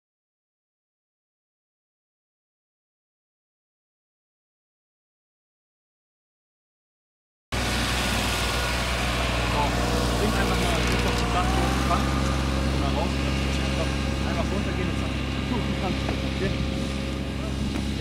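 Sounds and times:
ride-on lawn mower engine: 0:07.5 - 0:18.0.

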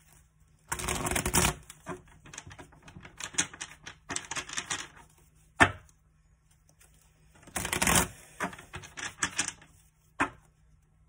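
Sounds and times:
cards being shuffled: 0:00.0 - 0:10.7.

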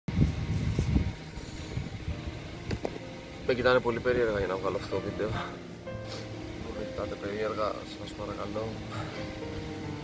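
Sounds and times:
wind on microphone: 0:00.1 - 0:03.0.

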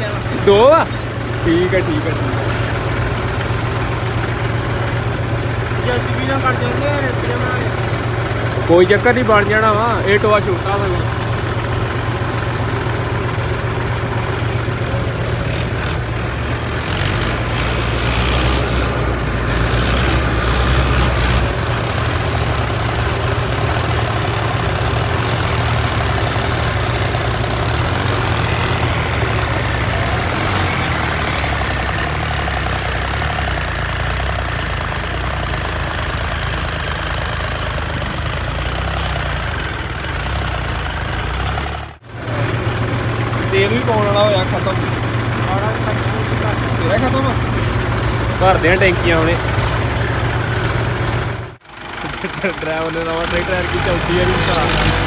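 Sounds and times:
diesel tractor engines running: 0:00.0 - 0:55.0.

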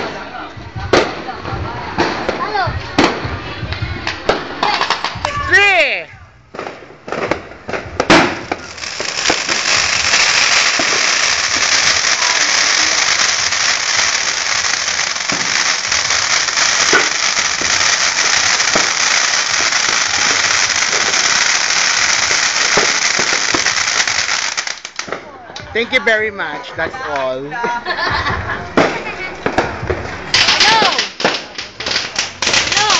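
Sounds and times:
firework fountain hissing and crackling: 0:00.0 - 0:26.4, 0:27.0 - 0:32.9
sharp cracks: 0:06.6 - 0:25.2, 0:28.8 - 0:32.9.

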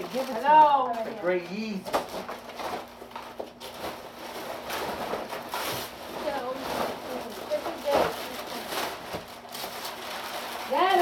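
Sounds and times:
wrapping paper tearing: 0:00.0 - 0:11.0.

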